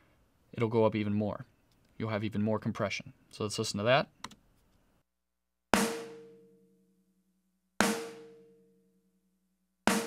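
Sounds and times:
compressed snare drum hits: 0:05.8 - 0:06.4, 0:07.8 - 0:08.4.

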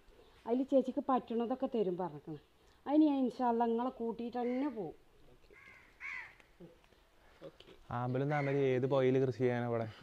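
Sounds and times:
woman's voice: 0:00.4 - 0:05.0
crow cawing: 0:04.4 - 0:04.9, 0:05.5 - 0:06.5, 0:08.3 - 0:08.7.

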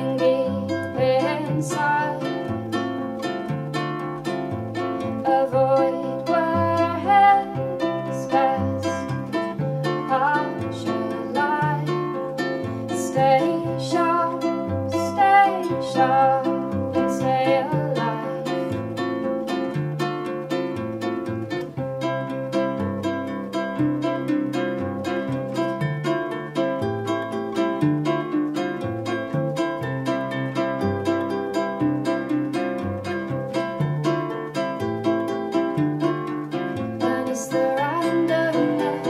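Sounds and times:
ukulele picking: 0:00.0 - 0:39.0.

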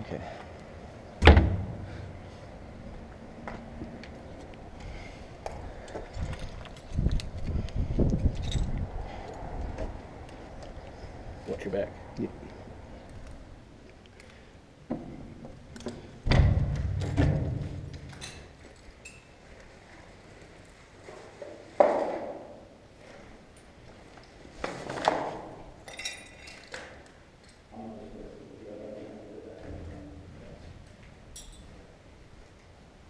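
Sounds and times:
heavy thump: 0:01.2 - 0:02.0
light clinks: 0:25.8 - 0:27.6, 0:31.3 - 0:31.8.

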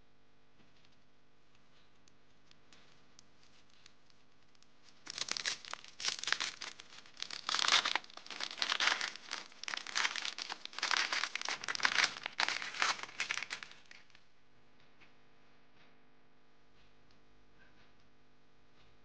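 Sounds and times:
cellophane wrapper crinkling: 0:02.2 - 0:14.2.

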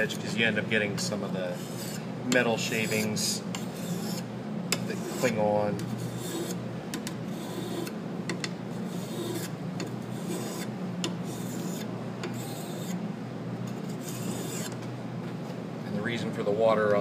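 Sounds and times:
sharpening stone rasping on blade: 0:01.5 - 0:02.0, 0:02.6 - 0:05.4, 0:06.0 - 0:06.6, 0:07.3 - 0:07.9, 0:08.8 - 0:13.0, 0:13.7 - 0:14.7.

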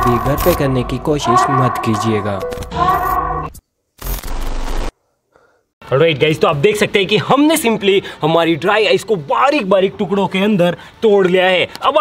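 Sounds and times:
digital glitch static: 0:00.0 - 0:01.3, 0:01.9 - 0:04.9
man speaking: 0:00.0 - 0:02.5.

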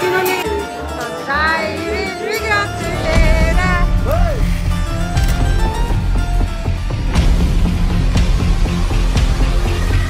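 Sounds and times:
music with pulsing bass: 0:02.9 - 0:10.0.

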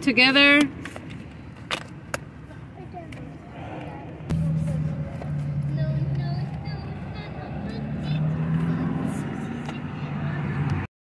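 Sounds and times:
car engine idling: 0:03.2 - 0:10.4.

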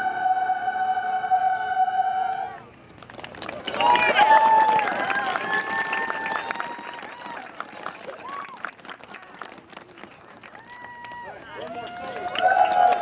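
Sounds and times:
children's choir singing: 0:00.0 - 0:02.6.

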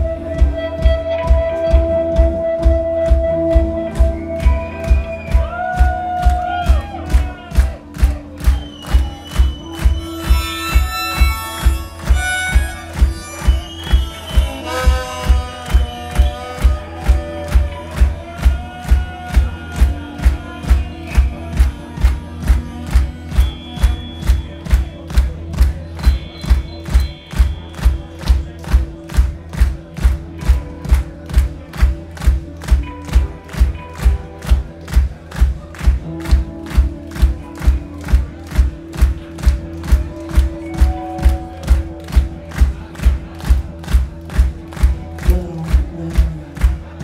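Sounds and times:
kick drum beat: 0:00.0 - 0:46.9
electric guitar and bass chords: 0:00.0 - 0:47.0.

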